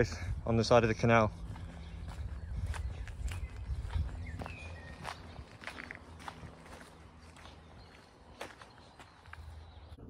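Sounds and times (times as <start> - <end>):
footsteps on gravel: 0.7 - 10.0.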